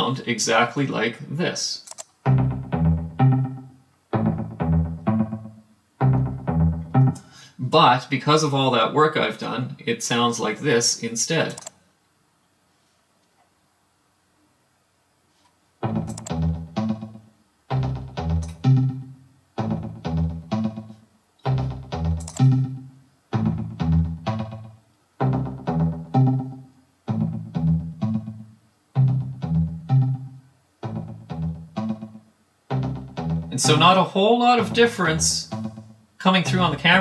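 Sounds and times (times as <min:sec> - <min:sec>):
filtered pluck synth phrases: 0:02.2 - 0:07.3, 0:15.8 - 0:37.0.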